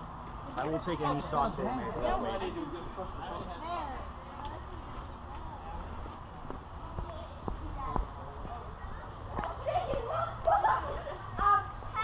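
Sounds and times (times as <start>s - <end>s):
people talking: 0.5s - 12.0s
footsteps on asphalt: 4.3s - 10.5s.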